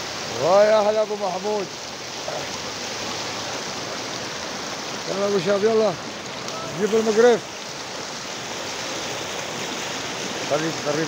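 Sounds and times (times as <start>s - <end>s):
river water rushing over rapids: 0.0s - 11.0s.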